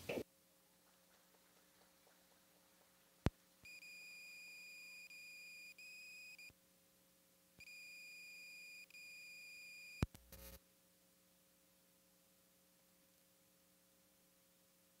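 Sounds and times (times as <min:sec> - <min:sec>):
click: 0:10.0 - 0:10.6.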